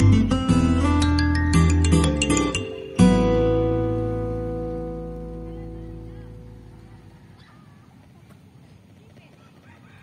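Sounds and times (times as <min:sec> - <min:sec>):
faint rooster crowing: 0:06.7 - 0:07.9.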